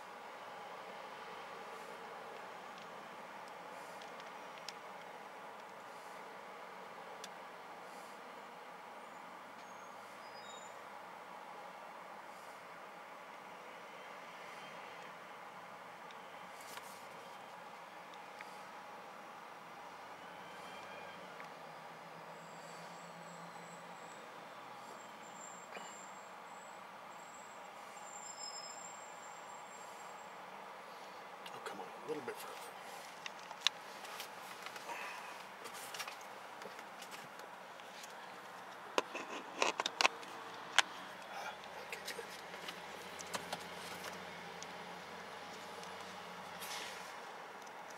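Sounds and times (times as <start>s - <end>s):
low street hum: 0.0s - 47.9s
sharp clicks and knocks: 39.0s - 40.9s.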